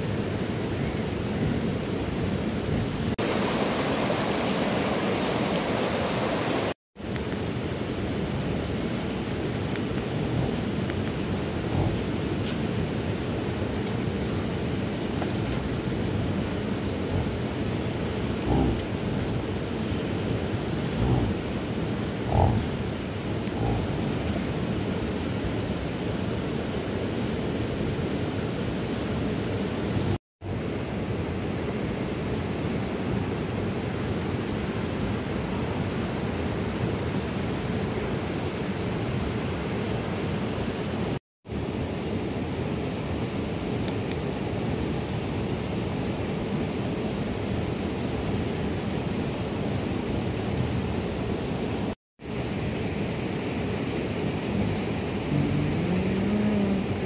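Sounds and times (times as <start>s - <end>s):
steady outdoor rushing noise: 0.0s - 34.6s, 50.2s - 57.0s.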